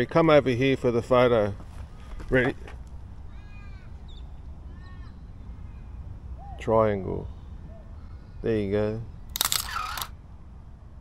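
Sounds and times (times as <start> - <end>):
camera shutter clicks: 9.3 - 10.1.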